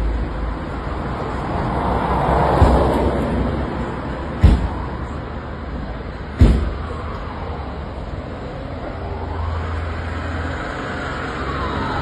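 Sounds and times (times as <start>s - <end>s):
street traffic noise: 0.0s - 12.0s
loud sharp bangs: 4.4s - 4.9s, 6.3s - 7.0s
vehicle passing: 6.2s - 12.0s.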